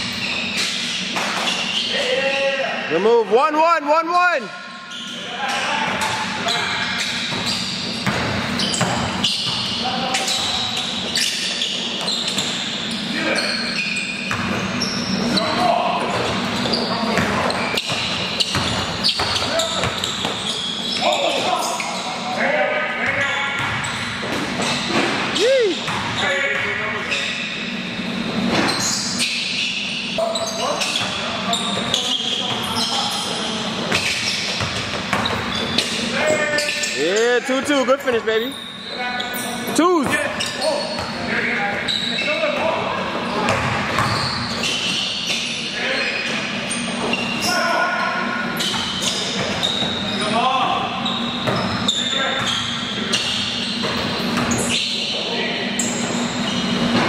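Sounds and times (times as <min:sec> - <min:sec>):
basketball bouncing on court: 0:07.2 - 0:12.7, 0:14.2 - 0:14.6, 0:15.9 - 0:20.6, 0:23.1 - 0:25.2, 0:25.8 - 0:26.8, 0:33.8 - 0:36.1, 0:43.4 - 0:45.4, 0:48.6 - 0:50.0, 0:51.4 - 0:54.8
loud woo shout: 0:25.4 - 0:25.9.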